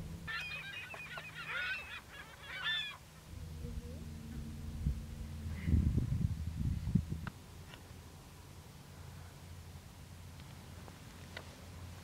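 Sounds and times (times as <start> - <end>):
water birds calling: 0.0 - 5.8.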